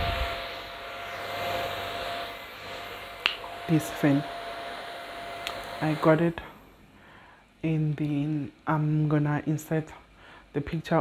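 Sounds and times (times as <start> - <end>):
electric hand fan whirring: 0.0 - 6.6.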